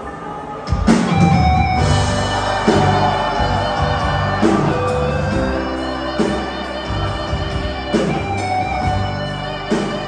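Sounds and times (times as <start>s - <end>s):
drums and bass: 0.0s - 10.0s
live rock band playing: 0.0s - 10.0s.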